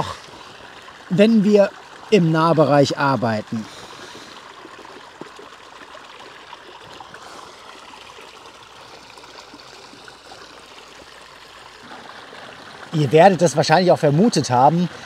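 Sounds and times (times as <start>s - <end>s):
stream running over rocks: 0.0s - 15.0s.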